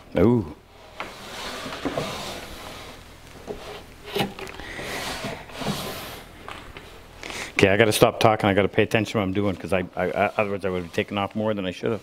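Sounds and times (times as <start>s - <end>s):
wooden drawer rubbing in cabinet: 0.9s - 6.3s.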